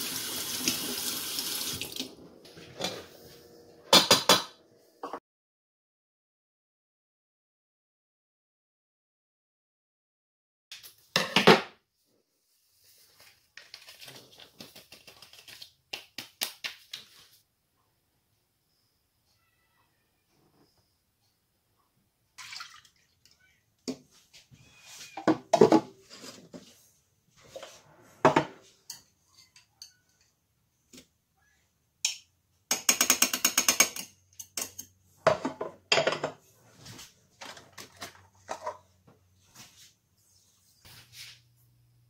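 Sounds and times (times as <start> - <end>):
utensils knocking and clinking: 32.1 - 36.4.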